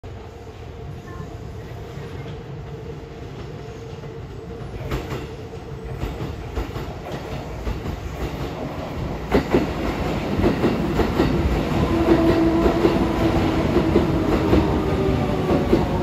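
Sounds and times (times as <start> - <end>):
electric train rumbling and humming: 0.0 - 16.0
train wheels clicking over rail joints: 5.9 - 8.6.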